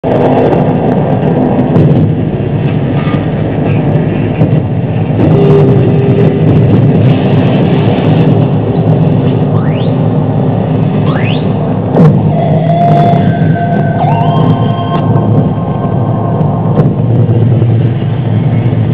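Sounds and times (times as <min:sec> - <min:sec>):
harsh electronic noise: 0:05.0 - 0:17.9
rising gliding tones: 0:12.3 - 0:16.8
steady high tones: 0:12.3 - 0:16.8.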